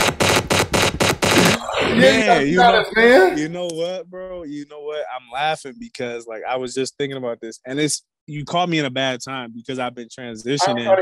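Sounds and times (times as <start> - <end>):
man laughing hard: 2.0 - 3.6.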